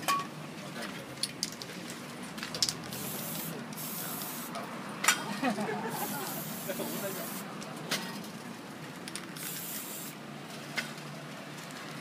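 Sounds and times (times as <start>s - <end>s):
spray-paint can hissing: 2.9s - 4.6s, 5.9s - 7.5s, 9.4s - 10.2s.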